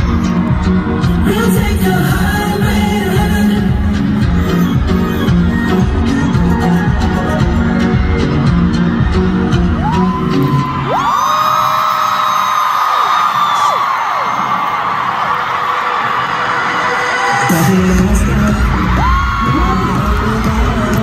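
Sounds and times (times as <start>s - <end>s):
crowd screaming and cheering: 0.0s - 21.0s
pop concert music with heavy beat: 0.0s - 21.0s.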